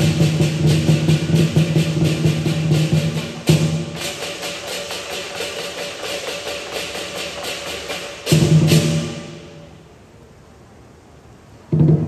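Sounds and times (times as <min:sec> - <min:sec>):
large drum beating fast: 0:00.0 - 0:09.6
cymbals clashing: 0:00.0 - 0:10.0.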